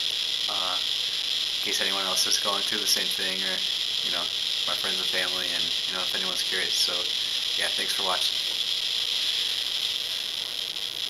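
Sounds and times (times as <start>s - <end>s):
geiger counter crackling: 0.0s - 11.0s.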